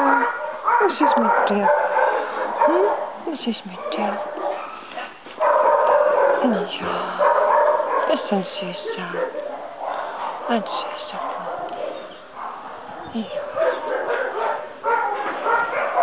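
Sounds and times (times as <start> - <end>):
dogs barking and yipping: 0.0 - 16.0.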